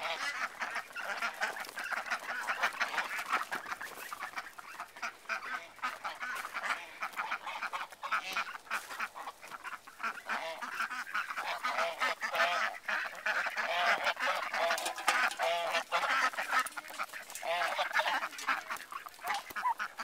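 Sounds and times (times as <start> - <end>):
ducks quacking: 0.0 - 20.0
geese honking: 0.0 - 20.0.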